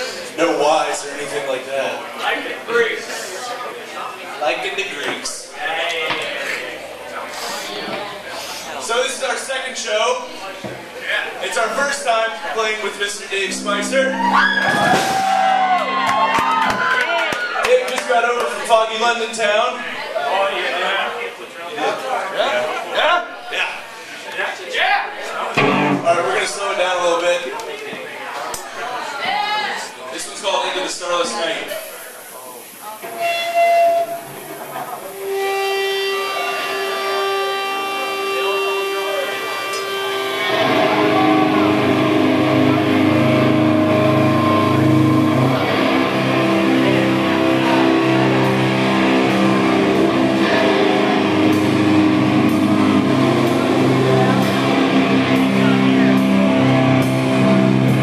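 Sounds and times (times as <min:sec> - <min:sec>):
people's voices: 0:00.0 - 0:58.0
room noise: 0:00.0 - 0:58.0
high amplified note: 0:11.6 - 0:17.4, 0:25.6 - 0:26.5, 0:35.0 - 0:58.0.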